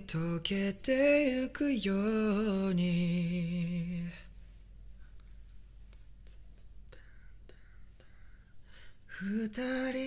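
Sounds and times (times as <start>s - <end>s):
soft mouth clicks: 5.1s - 8.2s
breathy whisper-like hiss: 6.2s - 9.3s
person singing: 9.1s - 10.0s.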